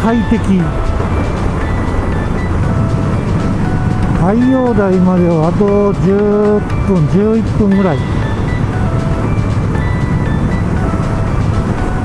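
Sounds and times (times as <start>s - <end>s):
background music with light notes: 0.0s - 12.0s
motorcycle engine running: 0.0s - 12.0s.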